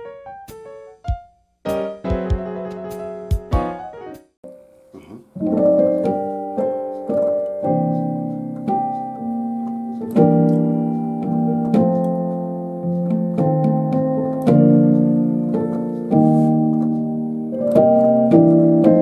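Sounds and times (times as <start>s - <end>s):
piano playing gospel chords: 0.0s - 4.6s, 5.4s - 19.0s.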